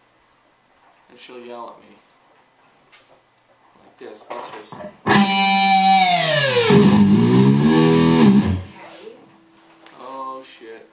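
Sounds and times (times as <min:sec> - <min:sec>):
distorted electric guitar note: 0:05.1 - 0:08.9.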